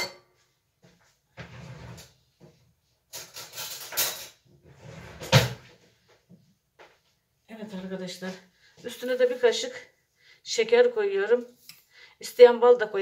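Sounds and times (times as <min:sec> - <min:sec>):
kitchen handling noise: 0:03.1 - 0:04.4.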